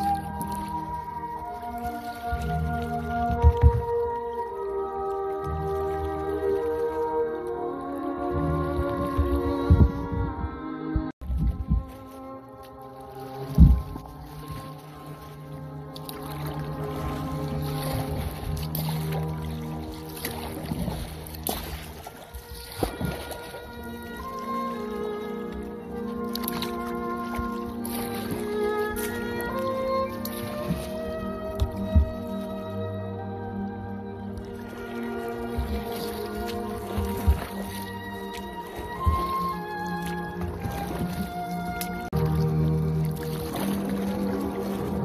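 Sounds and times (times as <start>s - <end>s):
kayak paddle splashing in water: 0.0s - 10.3s, 11.2s - 45.0s
held instrumental notes: 0.0s - 45.0s
paddle knocks: 2.3s - 4.1s, 13.5s - 14.0s, 30.2s - 32.6s
low thumps: 8.6s - 12.0s, 13.5s - 14.1s, 30.6s - 32.7s.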